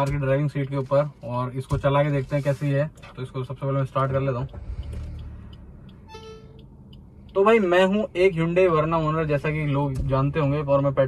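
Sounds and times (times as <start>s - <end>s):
car engine starting and idling: 0.0s - 11.0s.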